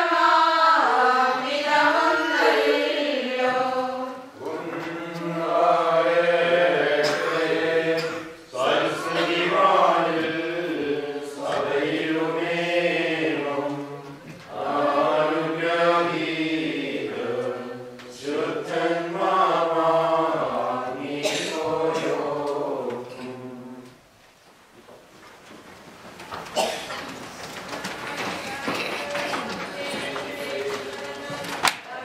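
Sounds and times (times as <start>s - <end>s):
group singing liturgical chant: 0.0s - 24.0s, 27.8s - 32.0s.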